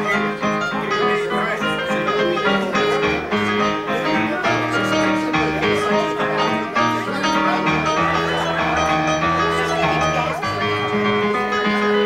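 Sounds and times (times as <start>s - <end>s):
dixieland jazz band playing: 0.0s - 12.0s.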